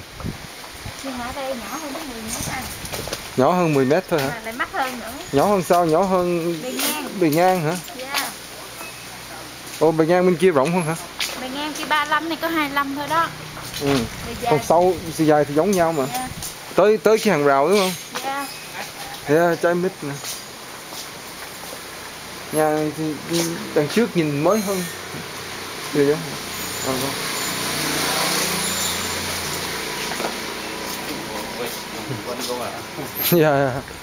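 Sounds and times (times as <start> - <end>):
people speaking: 1.0 - 2.7, 3.4 - 8.4, 9.2 - 18.6, 19.2 - 20.2, 22.5 - 25.0, 25.9 - 27.2, 31.0 - 33.9
vehicle engine passing by: 21.8 - 33.8.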